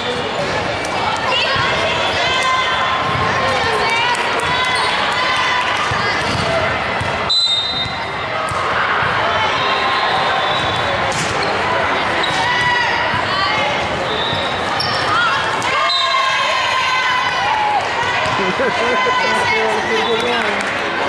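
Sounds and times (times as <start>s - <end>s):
players calling out: 7.6s - 20.6s.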